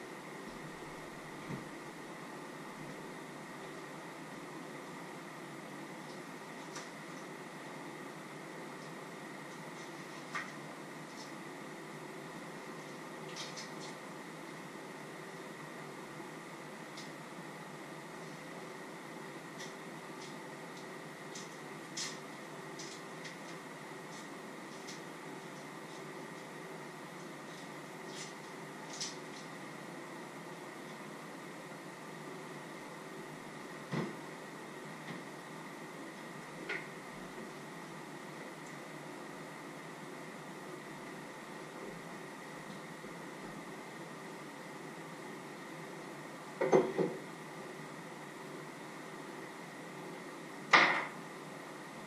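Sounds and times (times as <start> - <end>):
faint hum: 0.0 - 52.0.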